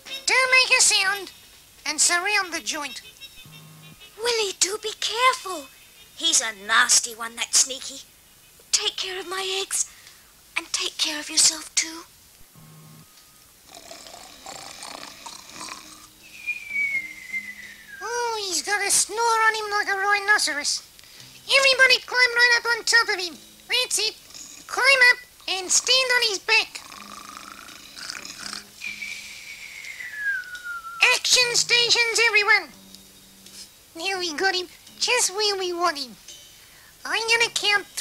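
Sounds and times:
cartoon snoring: 0:13.7 - 0:16.1, 0:26.7 - 0:28.8
whistle sliding down in pitch: 0:16.3 - 0:18.0, 0:28.8 - 0:31.0.

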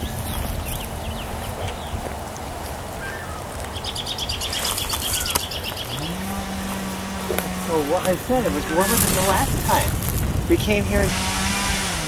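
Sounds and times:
songbird trilling: 0:00.0 - 0:02.0, 0:03.0 - 0:09.7
low hum rising in pitch: 0:05.8 - 0:10.5.

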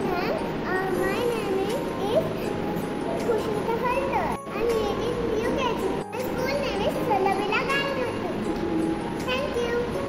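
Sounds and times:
girl speaking: 0:00.0 - 0:02.5, 0:03.1 - 0:08.4, 0:09.2 - 0:10.0.

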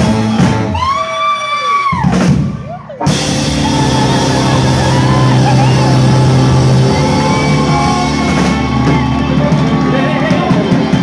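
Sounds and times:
live band playing loudly: 0:00.0 - 0:01.0, 0:01.7 - 0:11.0
person singing: 0:03.5 - 0:11.0.

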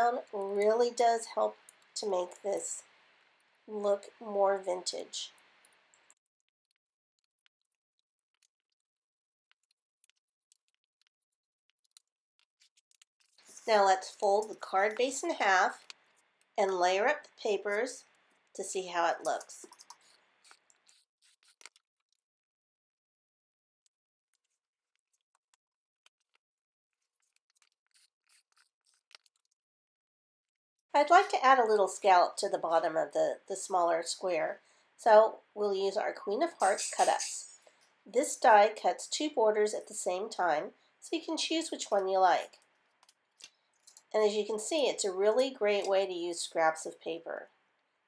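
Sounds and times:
paper and card rustling: 0:19.2 - 0:21.8, 0:26.2 - 0:29.5.

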